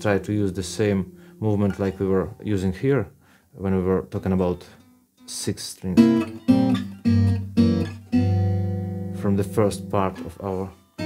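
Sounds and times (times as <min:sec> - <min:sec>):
acoustic guitar chords: 0:00.0 - 0:02.1, 0:04.8 - 0:11.0.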